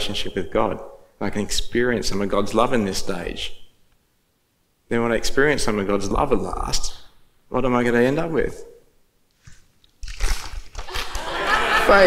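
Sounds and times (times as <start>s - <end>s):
paper and fabric rustling: 9.3s - 11.3s.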